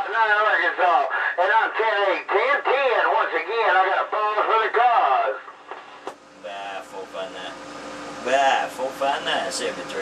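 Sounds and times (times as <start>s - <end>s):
man talking over radio: 0.0s - 5.5s
faint radio hiss: 0.0s - 7.5s.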